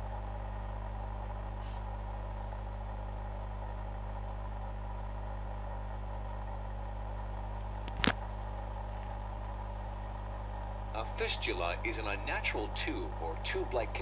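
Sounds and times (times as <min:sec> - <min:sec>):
low electrical hum: 0:00.0 - 0:14.0
sharp click: 0:07.8 - 0:08.2
faint recording hiss: 0:10.9 - 0:14.0.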